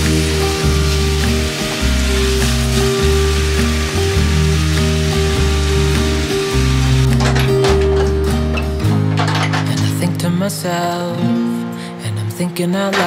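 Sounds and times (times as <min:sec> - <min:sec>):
stir-fry sizzling in a frying pan: 0:00.0 - 0:08.2
instrumental background music: 0:00.0 - 0:13.0.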